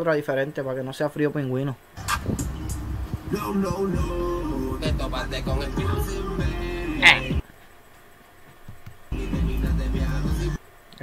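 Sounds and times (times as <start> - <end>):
deep bass with sharp ticks: 2.0 - 6.6
person rapping: 3.3 - 7.4, 9.2 - 10.6.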